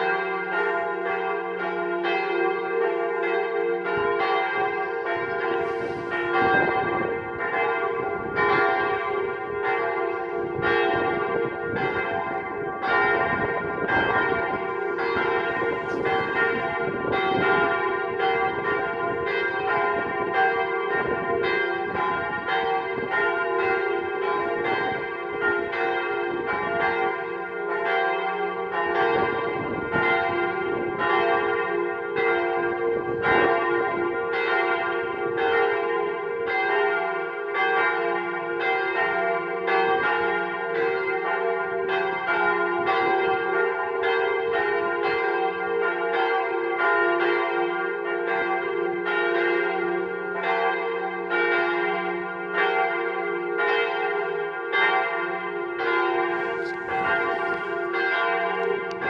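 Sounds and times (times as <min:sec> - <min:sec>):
swinging church bells ringing: 0:00.0 - 0:59.0.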